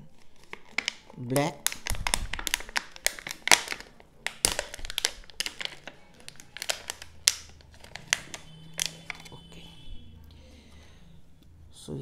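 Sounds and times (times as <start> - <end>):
plastic packaging crinkling: 0.0 - 9.5.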